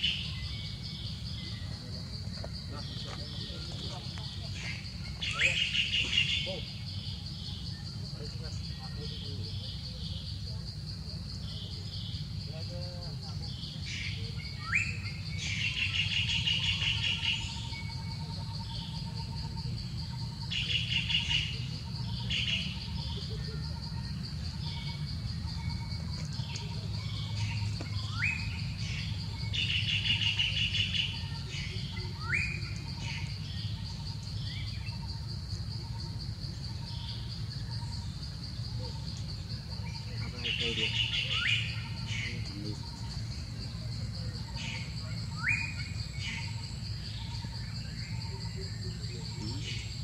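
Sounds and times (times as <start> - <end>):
high-pitched insect drone: 0.0 - 50.0
bird trilling: 2.8 - 7.8, 20.4 - 35.2.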